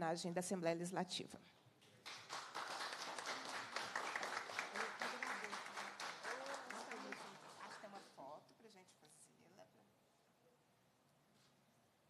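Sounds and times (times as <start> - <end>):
audience applauding: 2.0 - 8.1.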